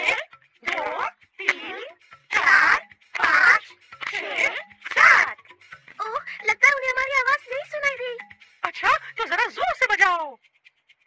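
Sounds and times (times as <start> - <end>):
cartoon voice sliding pitch: 0.0 - 5.4.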